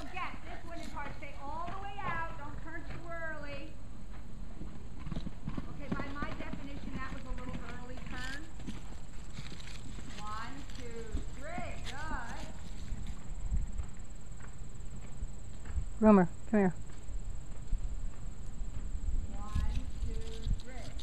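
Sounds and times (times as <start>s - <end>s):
horse hoofbeats cantering on sand: 0.0s - 15.9s.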